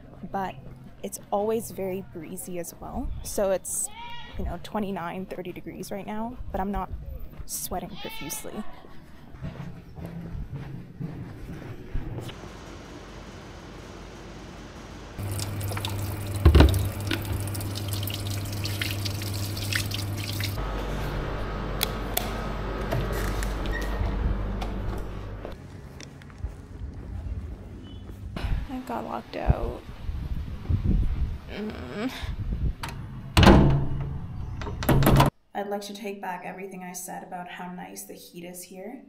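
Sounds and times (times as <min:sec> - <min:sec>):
low steady hum: 0:12.3 - 0:29.8
tap water running and splashing: 0:15.2 - 0:20.6.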